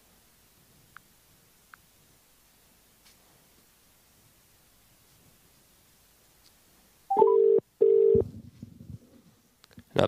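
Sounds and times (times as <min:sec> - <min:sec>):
electronic call tone beeps: 0:07.1 - 0:08.3.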